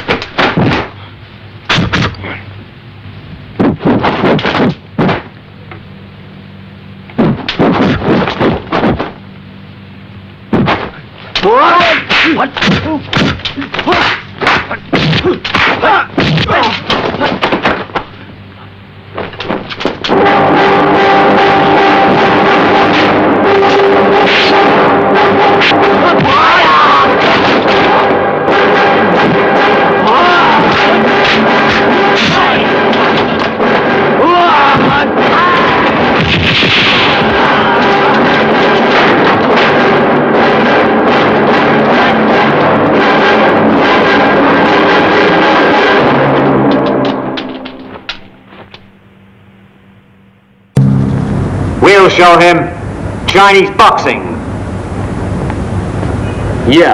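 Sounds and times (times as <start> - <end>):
punch and strike effects: 0.1 - 0.9, 1.7 - 2.2, 3.6 - 5.3, 7.2 - 9.2, 10.5 - 11.0, 11.8 - 17.9, 19.5 - 47.3, 50.8 - 51.7
fighters shouting: 11.4 - 17.6, 20.2 - 40.0
action film music: 20.1 - 48.0.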